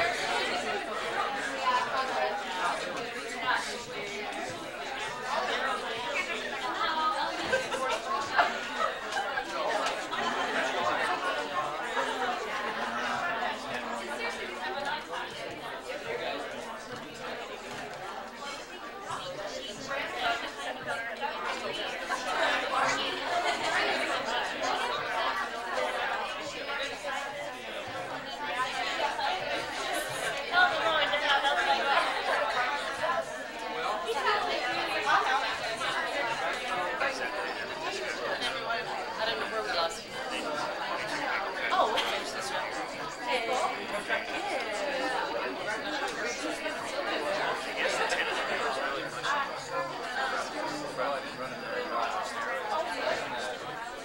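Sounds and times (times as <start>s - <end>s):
hubbub of overlapping conversation: 0.0s - 54.0s
many voices chatting: 0.0s - 54.0s.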